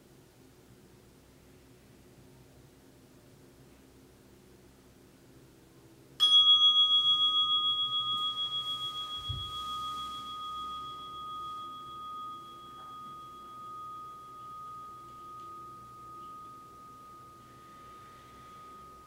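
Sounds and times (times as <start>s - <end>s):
meditation bell ringing: 6.2s - 19.0s.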